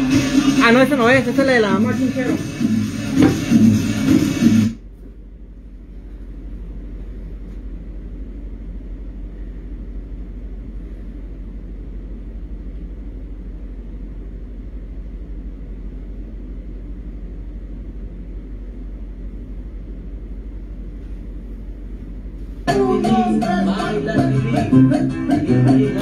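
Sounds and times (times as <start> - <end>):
music from a television: 0.0 - 4.8, 22.7 - 26.0
steady low hum: 0.0 - 26.0.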